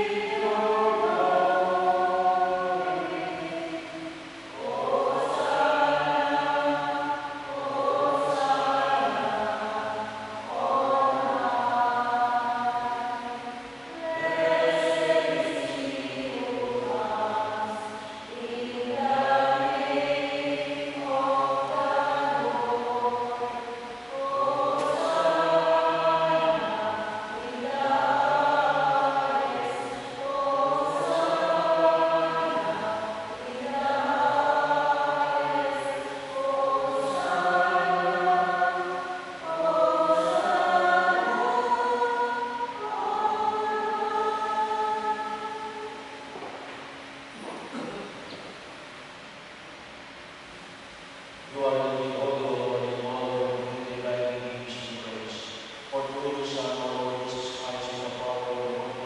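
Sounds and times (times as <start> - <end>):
church choir singing a hymn: 0.0 - 46.7, 51.5 - 59.0.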